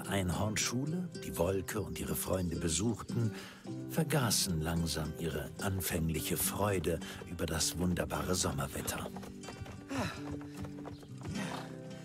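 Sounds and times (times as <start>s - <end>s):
background music: 0.0s - 12.0s
hooves clip-clopping: 4.0s - 12.0s.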